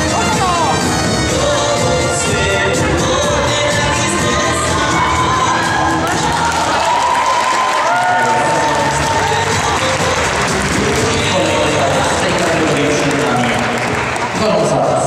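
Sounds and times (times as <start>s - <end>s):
dance music with steady beat: 0.0s - 15.0s
spectators cheering and shouting: 3.2s - 15.0s.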